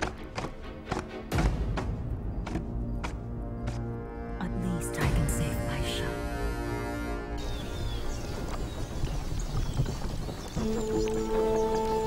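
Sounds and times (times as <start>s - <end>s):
hooves clopping on dirt road: 7.4s - 12.0s
music of long held notes: 10.6s - 12.0s.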